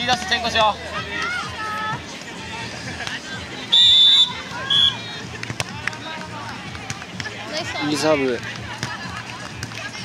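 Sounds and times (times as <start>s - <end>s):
chatter of voices: 0.0s - 10.0s
volleyball hand slap: 5.4s - 6.0s.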